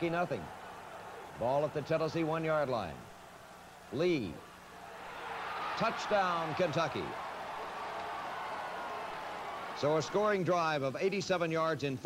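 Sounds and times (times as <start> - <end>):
stadium crowd roar: 0.0 - 11.3.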